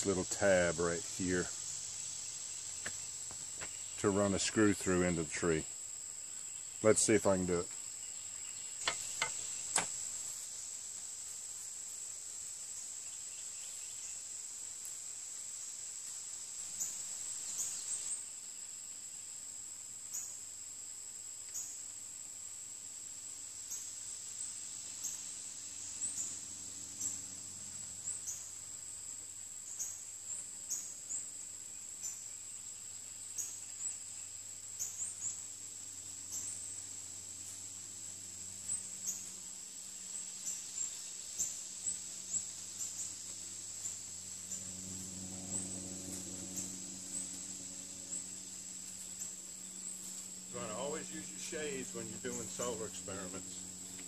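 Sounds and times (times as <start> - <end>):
high-pitched insect chorus: 0.0 - 54.0
faint low drone: 41.9 - 54.0.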